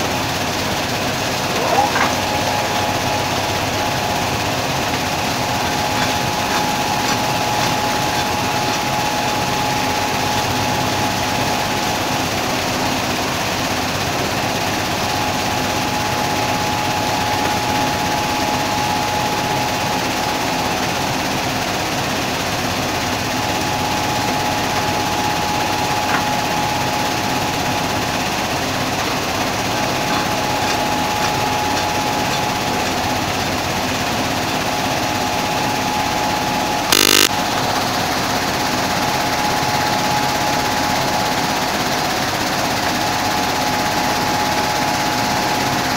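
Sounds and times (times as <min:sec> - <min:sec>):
steady mechanical whine: 0:00.0 - 0:13.7, 0:35.6 - 0:37.4.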